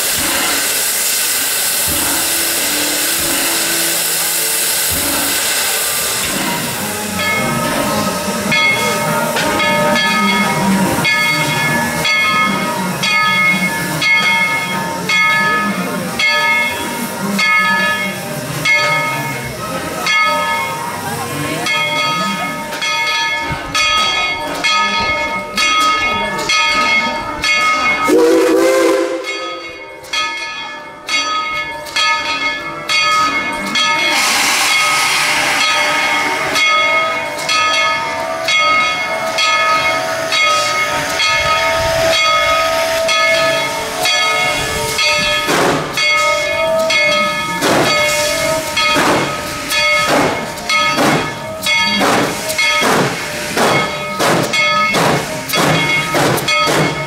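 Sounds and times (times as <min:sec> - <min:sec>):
steam hissing: 0:00.0 - 0:23.5, 0:32.7 - 0:57.0
rush of steam: 0:00.0 - 0:30.0, 0:31.9 - 0:57.0.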